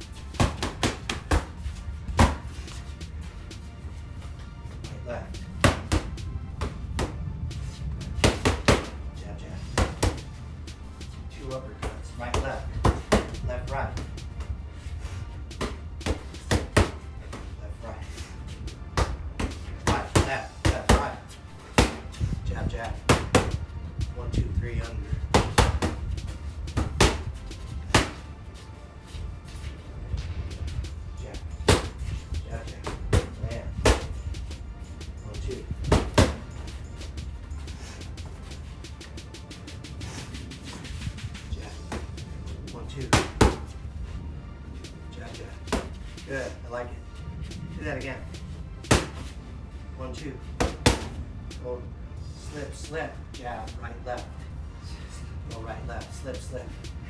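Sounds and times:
boxing gloves hitting mitts: 0.3 - 2.8, 5.5 - 7.2, 8.1 - 9.0, 9.7 - 10.3, 11.7 - 14.2, 15.5 - 17.5, 18.5 - 23.6, 25.1 - 28.3, 31.6 - 34.2, 35.4 - 37.1, 42.9 - 43.8, 45.3 - 46.1, 48.8 - 49.4, 50.6 - 51.2.

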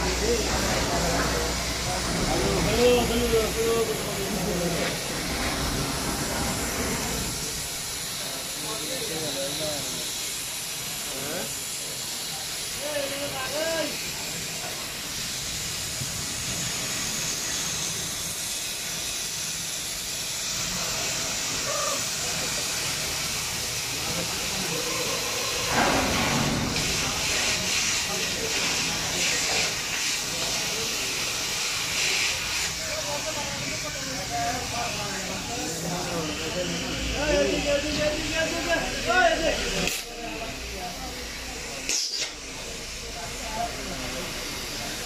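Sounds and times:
steady rushing hiss: 0.0 - 45.0.

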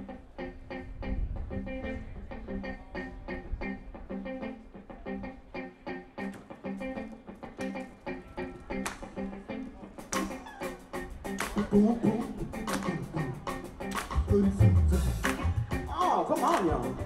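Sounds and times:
funk band playing: 0.0 - 17.0.

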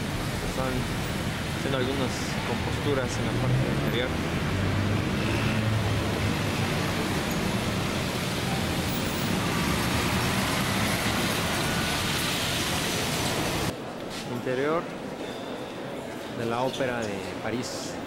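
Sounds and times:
city street traffic: 0.0 - 18.0.

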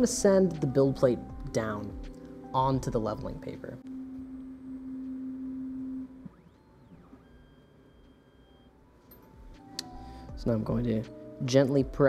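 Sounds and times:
stepper motor humming: 3.9 - 9.7.

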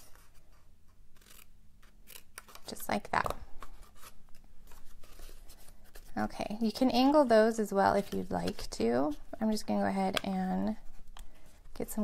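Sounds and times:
cardstock rustling: 2.4 - 10.2.

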